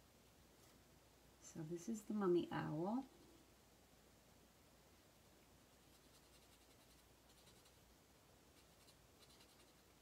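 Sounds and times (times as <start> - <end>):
marker scratching on cardstock: 5.9 - 7.8, 8.6 - 9.9.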